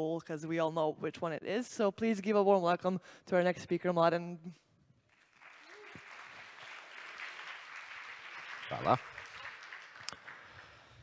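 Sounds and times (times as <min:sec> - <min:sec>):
audience applause: 0:05.1 - 0:11.0.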